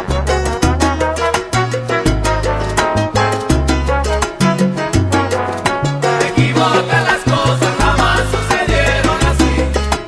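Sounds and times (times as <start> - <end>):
salsa music: 0.0 - 10.0.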